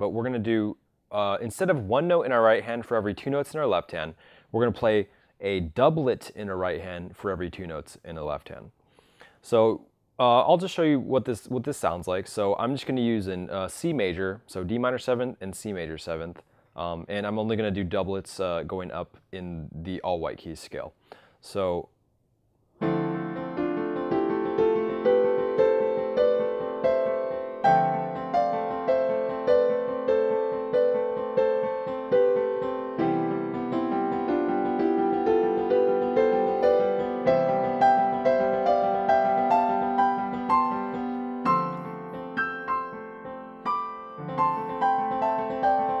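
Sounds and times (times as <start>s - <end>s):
digital piano playing: 22.8s - 46.0s.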